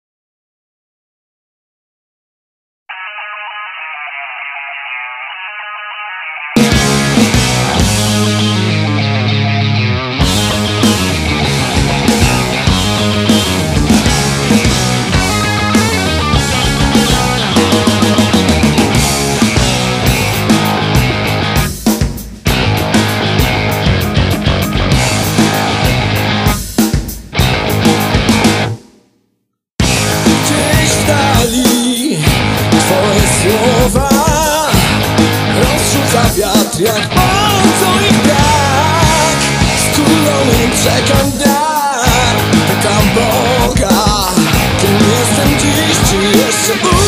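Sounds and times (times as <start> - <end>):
thin filtered electric guitar riff: 2.9 - 21.8, 22.5 - 26.6
rock band playing instrumental: 6.6 - 28.8, 29.8 - 47.0.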